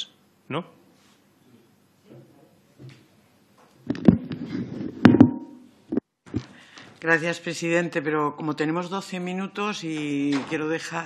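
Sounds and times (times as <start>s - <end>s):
microphone being handled: 3.8s - 6.6s.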